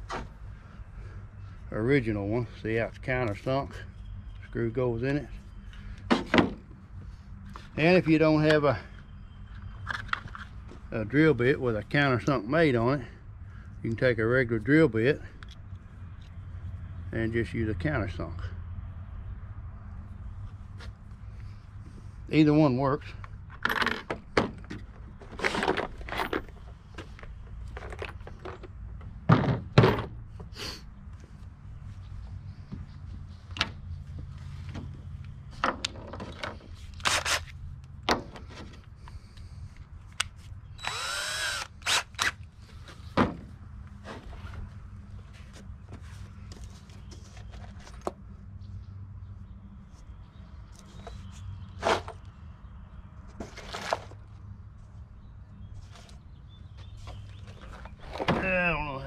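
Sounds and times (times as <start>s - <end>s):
cordless drill whine: 40.8s - 42.4s.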